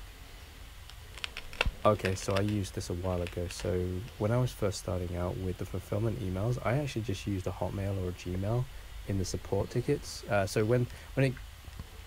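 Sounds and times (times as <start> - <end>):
man speaking: 1.8 - 11.4.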